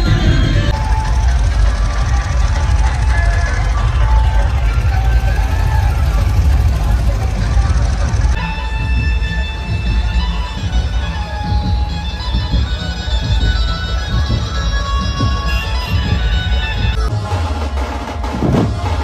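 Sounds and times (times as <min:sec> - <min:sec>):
crowd voices: 0:00.0 - 0:19.0
loud amplified music with heavy bass: 0:00.0 - 0:19.0.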